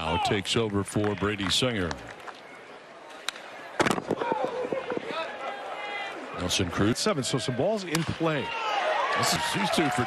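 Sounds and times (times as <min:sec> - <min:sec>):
crowd voices: 0:00.0 - 0:10.0
people clapping: 0:00.2 - 0:02.4
crowd murmur: 0:02.6 - 0:06.7
baseball bat crack: 0:03.1 - 0:05.2, 0:07.9 - 0:08.3.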